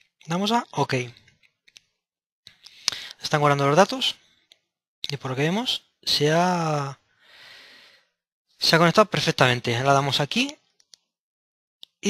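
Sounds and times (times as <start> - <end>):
person speaking: 0.2 - 1.3, 2.7 - 4.2, 5.0 - 7.0, 8.6 - 10.6.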